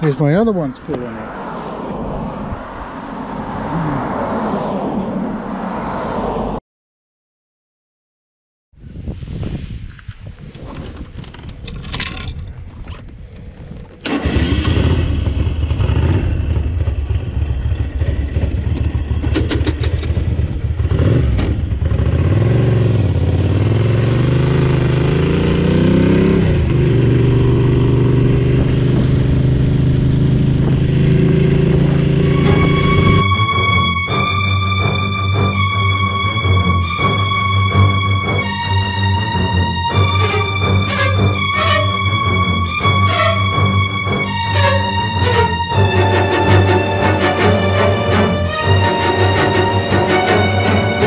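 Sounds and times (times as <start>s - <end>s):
wind rush: 0.6s - 6.6s, 8.8s - 14.0s
motorcycle engine running: 14.1s - 33.2s
music: 32.3s - 51.0s.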